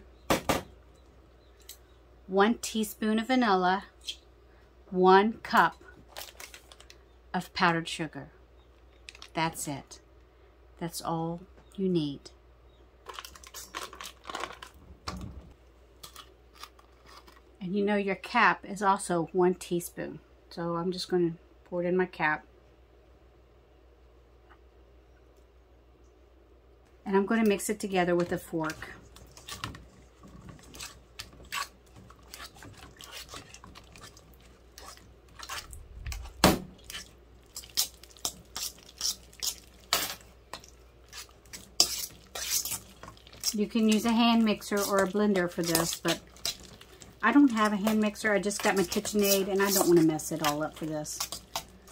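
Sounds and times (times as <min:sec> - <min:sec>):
crinkling handling noise: 0:05.8 - 0:07.1, 0:08.8 - 0:09.4, 0:13.0 - 0:17.6, 0:28.7 - 0:51.9
fork scraping metal bowl: 0:29.2 - 0:35.7, 0:36.8 - 0:51.9.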